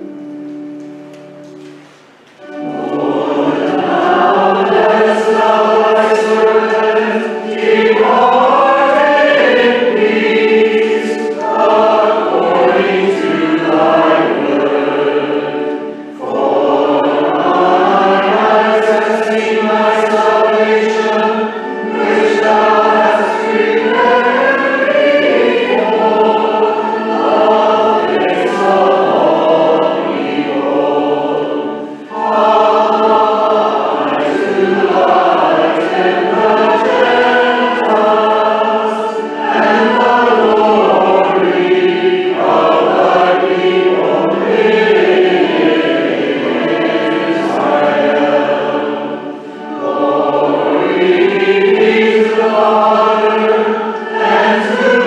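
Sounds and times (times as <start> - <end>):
group singing a hymn: 0.0 - 55.0.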